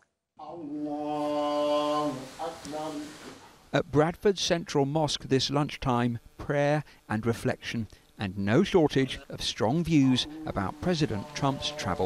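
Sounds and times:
man chanting a prayer: 0:00.4 - 0:03.2, 0:08.8 - 0:12.0.

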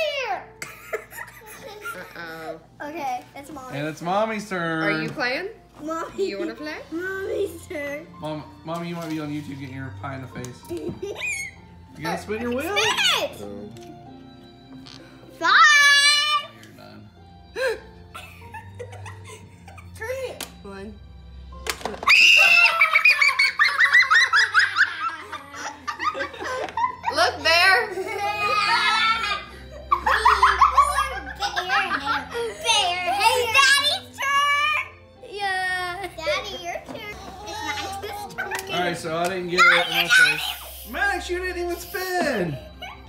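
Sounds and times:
children giggling and laughing: 0:00.4 - 0:02.6, 0:17.5 - 0:20.1, 0:22.3 - 0:33.8, 0:35.7 - 0:39.0, 0:42.6 - 0:43.0.

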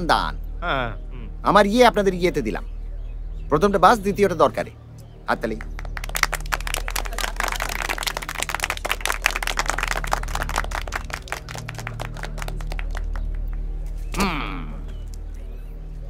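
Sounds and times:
low steady hum: 0:00.0 - 0:16.0
group of people clapping: 0:05.5 - 0:13.8.

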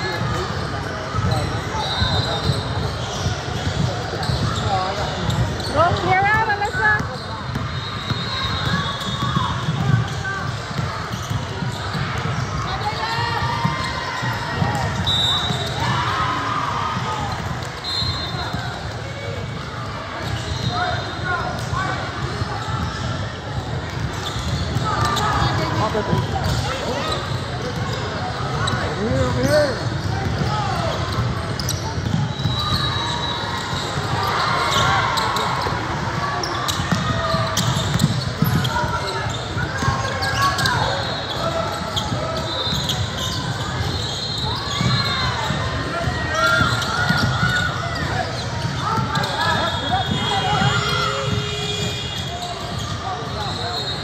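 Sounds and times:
sneakers squeaking: 0:00.0 - 0:54.0.

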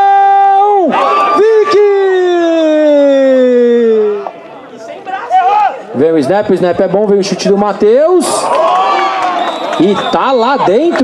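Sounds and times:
man shouting drawn-out vowel: 0:00.0 - 0:04.3
man speaking: 0:00.8 - 0:05.1, 0:05.9 - 0:08.4, 0:09.8 - 0:11.0.

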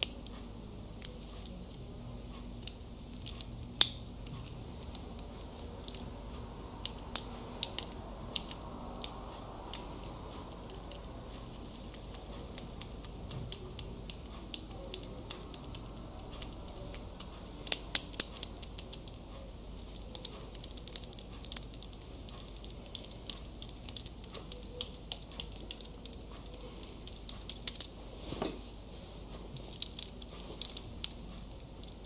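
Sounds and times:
metal watch links clicking: 0:02.6 - 0:06.1, 0:06.8 - 0:19.2, 0:19.8 - 0:27.9, 0:29.6 - 0:32.0.

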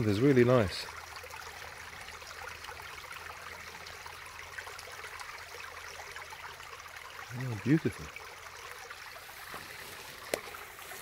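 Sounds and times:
stream trickling over stones: 0:00.0 - 0:11.0.

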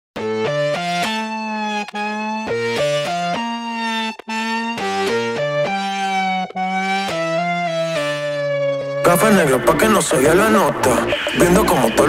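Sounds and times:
reggaeton instrumental melody: 0:00.2 - 0:12.0.

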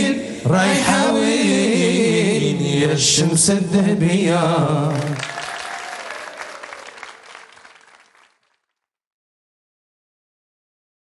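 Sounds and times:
audience applauding: 0:04.8 - 0:08.6.

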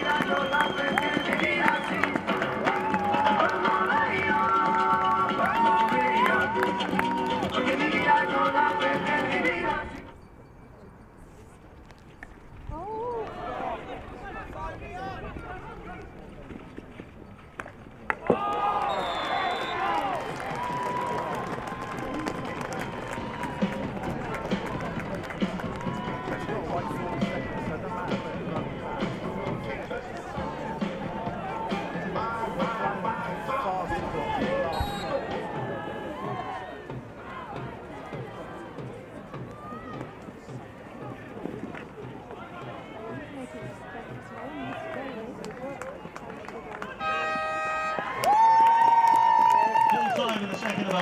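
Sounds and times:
players shouting: 0:00.0 - 0:09.8, 0:18.2 - 0:45.3.

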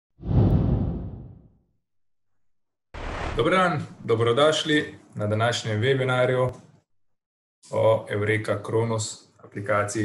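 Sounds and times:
low whoosh: 0:00.2 - 0:01.5.

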